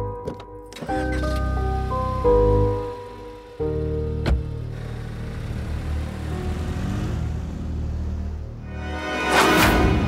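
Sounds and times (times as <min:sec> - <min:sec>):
background music: 0:00.0 - 0:10.0
car engine running: 0:01.4 - 0:08.6.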